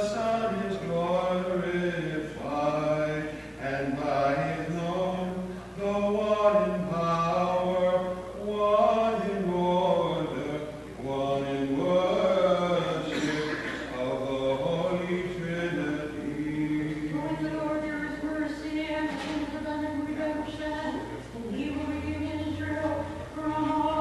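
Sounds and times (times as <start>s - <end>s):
singer breathing: 3.3s - 3.6s, 5.4s - 5.8s.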